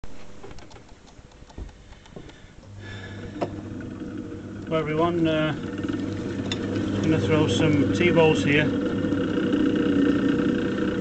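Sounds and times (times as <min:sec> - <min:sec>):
potter's wheel motor humming: 0:02.6 - 0:11.0.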